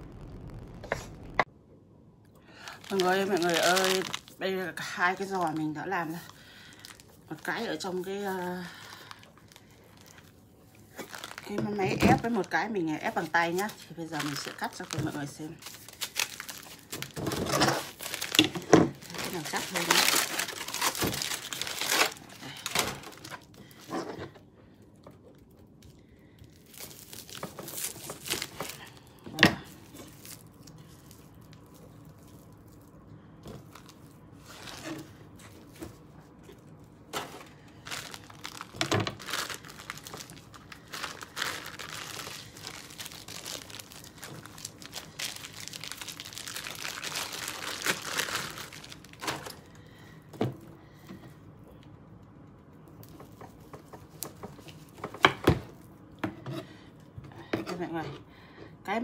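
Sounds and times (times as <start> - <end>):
plastic wrapping crinkling and tearing: 0.0 - 1.4, 2.6 - 50.2, 52.9 - 56.0.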